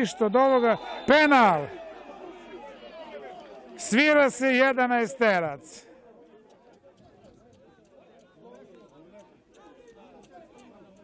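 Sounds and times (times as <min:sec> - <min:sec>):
crowd shouting and calling: 0:00.0 - 0:11.0.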